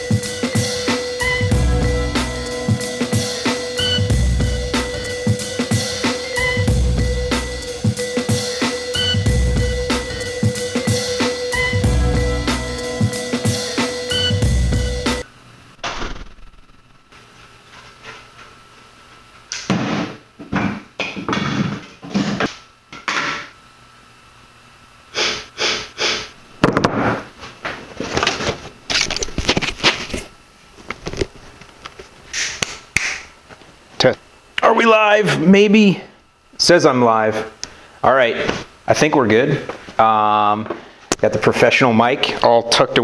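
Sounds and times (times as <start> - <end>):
music with drum beat: 0.0 - 15.2.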